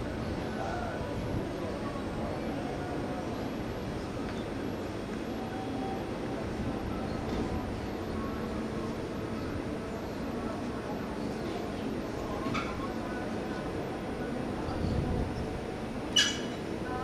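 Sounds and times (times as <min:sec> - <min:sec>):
faint indistinct voices: 0:00.0 - 0:17.0
outdoor rumble and hiss: 0:00.0 - 0:17.0.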